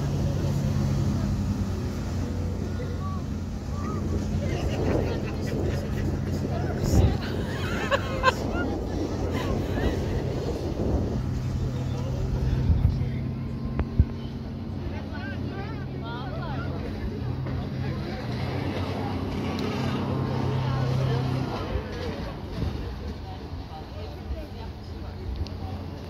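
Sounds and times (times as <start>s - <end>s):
motorboat engine droning: 0.0s - 26.0s
voices calling out: 0.0s - 26.0s.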